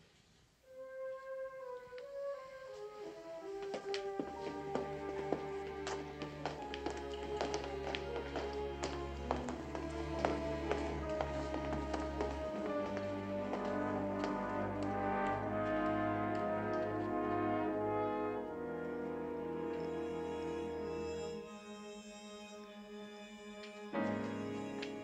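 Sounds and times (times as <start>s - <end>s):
orchestral slow melody: 0.7s - 25.0s.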